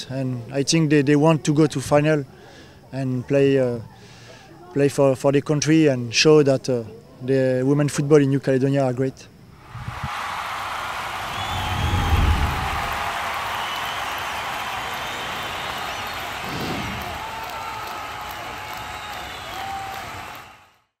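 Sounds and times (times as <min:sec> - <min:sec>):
crowd cheering and applause: 0:09.6 - 0:20.9
deep swell: 0:09.7 - 0:13.6.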